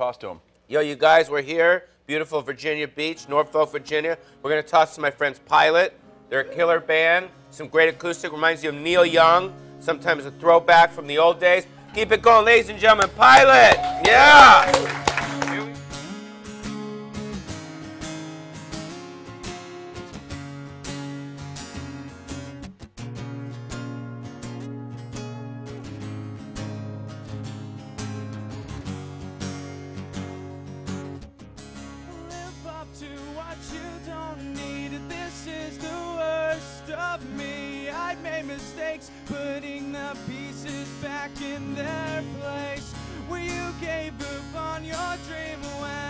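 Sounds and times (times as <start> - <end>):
acoustic guitars strumming: 3.0 - 46.0
man singing wordlessly: 6.3 - 14.6, 32.1 - 46.0.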